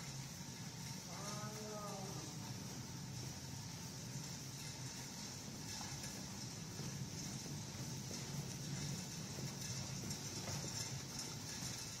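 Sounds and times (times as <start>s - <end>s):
steady hiss: 0.0s - 12.0s
stretcher wheels rattling: 0.0s - 12.0s.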